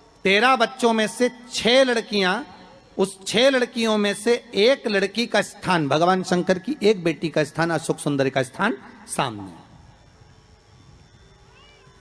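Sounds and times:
faint background hum: 0.0 - 12.0
high meow-like call: 11.4 - 12.0.

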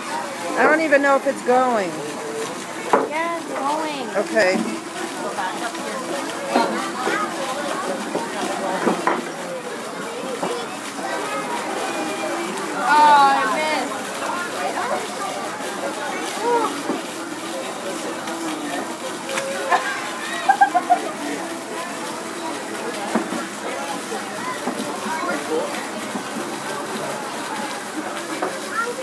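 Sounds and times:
steady background noise: 0.0 - 29.0.

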